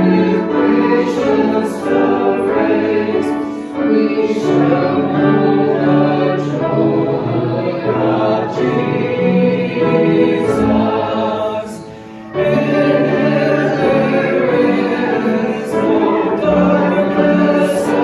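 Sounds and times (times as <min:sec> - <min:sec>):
group singing a hymn: 0:00.0 - 0:18.0.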